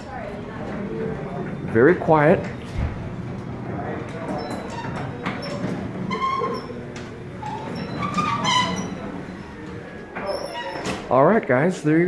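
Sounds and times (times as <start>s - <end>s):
garage door opener humming: 0.1s - 11.1s.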